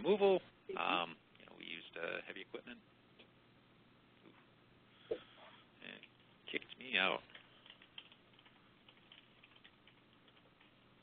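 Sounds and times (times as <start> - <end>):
computer keyboard typing: 7.2 - 11.0.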